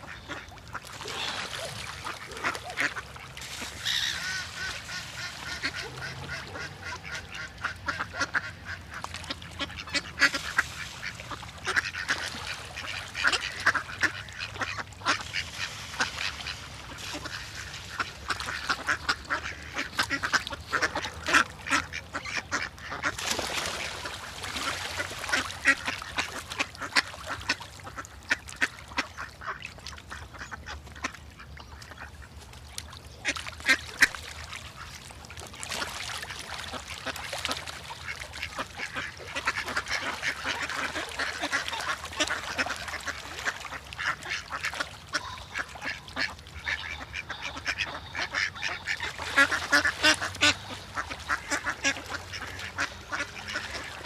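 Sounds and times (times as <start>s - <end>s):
ducks quacking: 0.0s - 32.4s, 35.7s - 54.0s.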